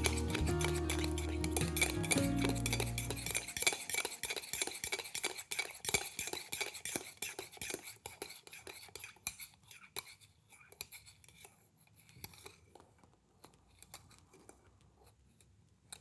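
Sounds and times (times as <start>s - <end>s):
background music: 0.0s - 3.8s
spoon clinking in ceramic mug: 0.0s - 5.2s.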